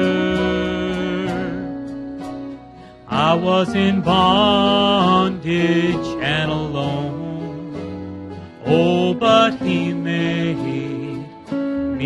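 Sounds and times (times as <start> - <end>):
men singing gospel song: 0.0 - 1.8, 3.1 - 7.8, 8.6 - 11.4
instrumental accompaniment: 0.0 - 12.0.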